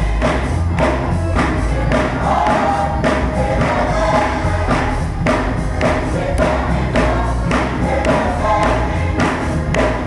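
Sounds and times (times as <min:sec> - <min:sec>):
deep bass line: 0:00.0 - 0:10.0
gospel choir singing: 0:00.0 - 0:10.0
steady beat: 0:00.0 - 0:10.0.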